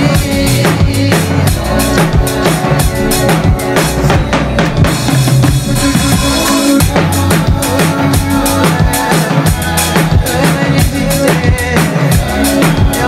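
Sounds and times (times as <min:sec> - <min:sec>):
bassline and chords: 0:00.0 - 0:13.0
drum kit groove: 0:00.0 - 0:13.0.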